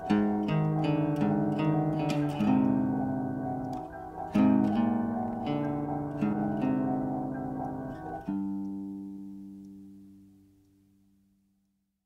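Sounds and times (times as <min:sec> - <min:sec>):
plucked-string chord ringing: 0:00.0 - 0:10.5.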